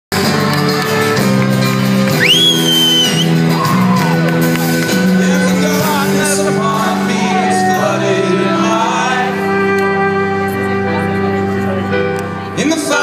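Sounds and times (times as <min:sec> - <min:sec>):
acoustic band playing chords: 0:00.1 - 0:13.0
audience member whooping: 0:02.1 - 0:05.0.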